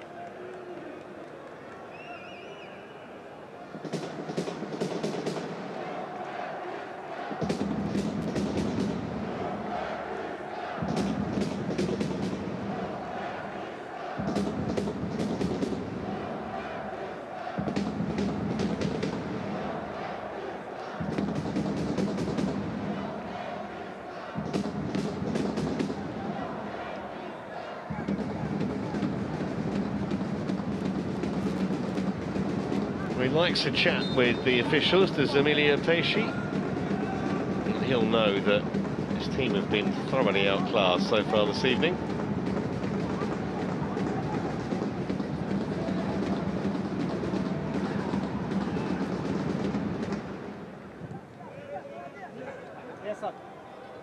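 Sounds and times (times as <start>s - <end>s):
quick drum strikes: 3.8s - 5.7s, 7.3s - 9.8s, 10.6s - 13.1s, 14.1s - 16.7s, 17.5s - 19.9s, 21.0s - 23.3s, 24.4s - 26.8s, 27.9s - 50.5s.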